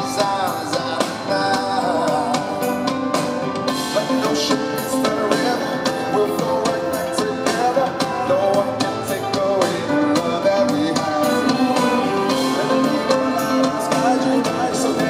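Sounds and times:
people singing: 0.0s - 2.8s, 3.8s - 15.0s
drum kit beat: 0.0s - 15.0s
guitar: 0.0s - 15.0s
keyboard: 0.0s - 15.0s.

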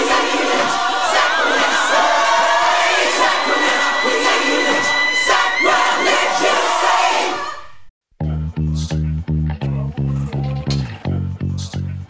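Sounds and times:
group singing over dense backing: 0.0s - 7.7s.

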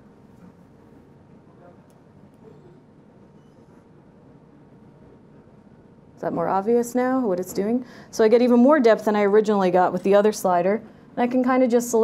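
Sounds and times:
low hiss with light hum: 0.0s - 12.0s.

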